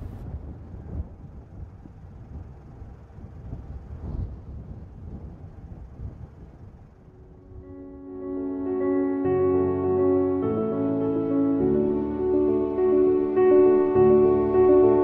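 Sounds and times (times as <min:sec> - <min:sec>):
wind buffeting microphone: 0:00.0 - 0:08.1
music with held tones: 0:07.4 - 0:15.0.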